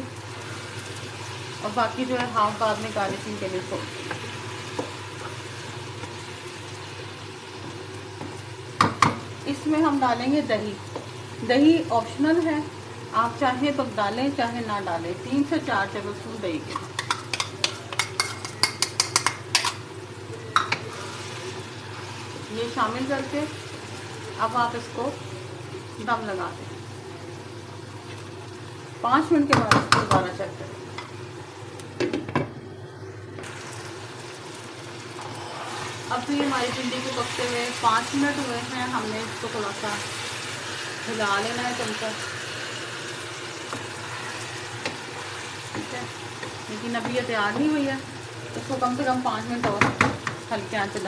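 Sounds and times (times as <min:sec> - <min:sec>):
food sizzling in a wok: 0:00.0 - 0:51.0
wooden spatula knocking on wok: 0:08.8 - 0:09.2, 0:29.5 - 0:30.3, 0:49.6 - 0:50.4.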